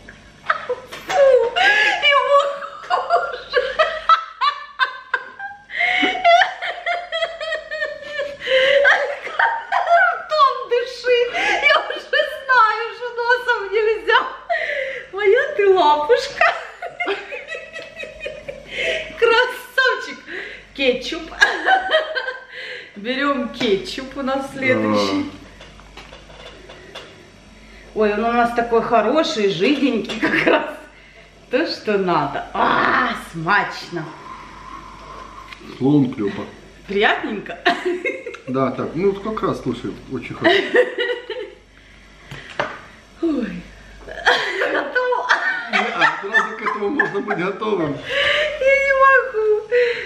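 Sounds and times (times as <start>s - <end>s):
woman laughing: 0.4s - 20.4s, 21.2s - 22.9s, 30.0s - 30.8s, 37.2s - 38.4s, 40.4s - 41.6s, 44.1s - 50.0s
man laughing: 2.8s - 10.3s, 16.8s - 19.2s, 40.4s - 41.5s, 44.2s - 48.5s.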